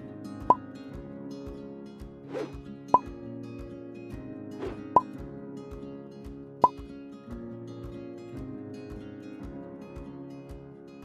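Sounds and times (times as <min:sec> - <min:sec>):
light guitar music: 0:00.0 - 0:11.0
brief swish: 0:02.3 - 0:02.6, 0:04.6 - 0:05.0.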